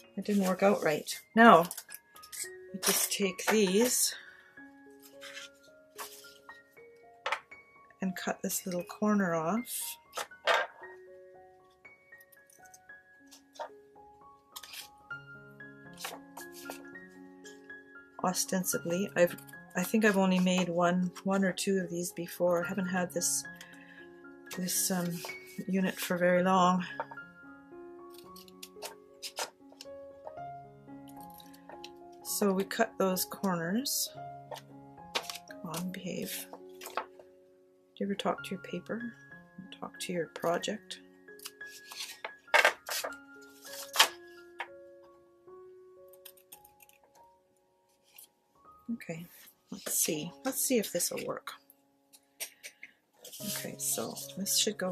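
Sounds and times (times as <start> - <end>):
soft background music: 0.0 - 54.9
scissors snipping paper: 14.5 - 15.0, 28.1 - 29.9, 34.5 - 36.0, 41.4 - 44.2.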